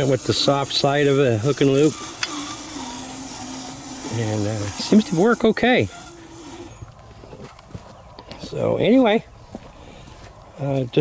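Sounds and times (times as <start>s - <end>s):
electric motor whine: 0.0s - 7.6s.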